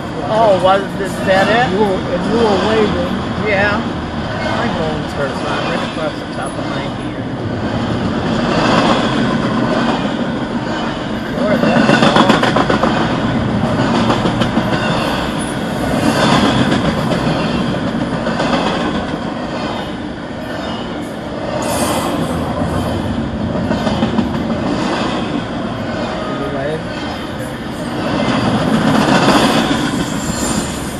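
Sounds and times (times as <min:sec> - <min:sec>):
freight train wheels rumbling: 0:00.0 - 0:30.9.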